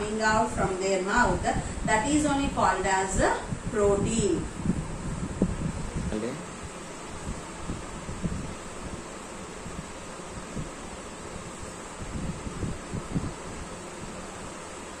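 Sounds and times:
room noise and hiss: 0.0 - 15.0.

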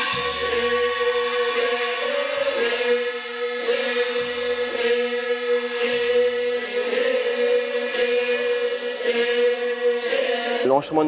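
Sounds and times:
drone chanting: 0.0 - 11.0.

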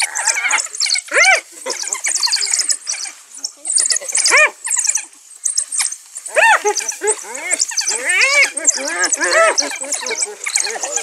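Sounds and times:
squealing yelps: 0.0 - 3.1, 6.3 - 11.0
high-pitched twittering chatter: 0.0 - 11.0.

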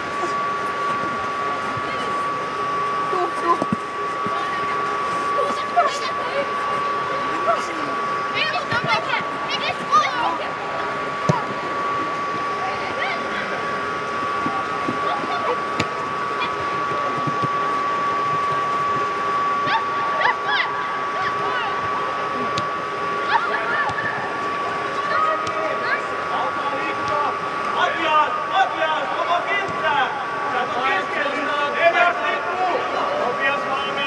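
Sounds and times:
steady high hum: 0.0 - 34.0
young players shouting: 7.2 - 10.6.

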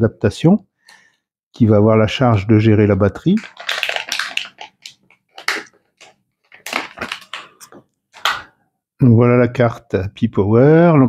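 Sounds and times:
plastic bag crinkling: 3.3 - 8.5.

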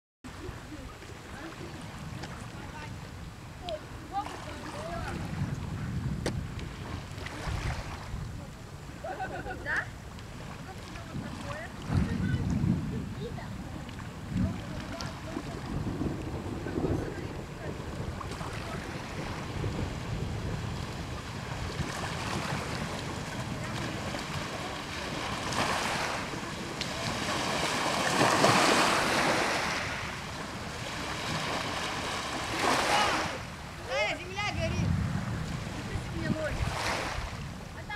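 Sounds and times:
wind buffeting microphone: 0.3 - 37.9
waves washing onto pebbles: 9.0 - 37.9.

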